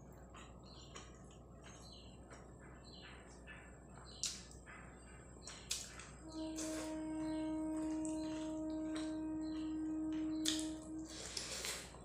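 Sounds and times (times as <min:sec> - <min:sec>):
wet mouth clicks eating: 0:04.2 - 0:04.6, 0:05.4 - 0:06.2, 0:10.3 - 0:12.0
steady pitched tone: 0:06.2 - 0:11.2.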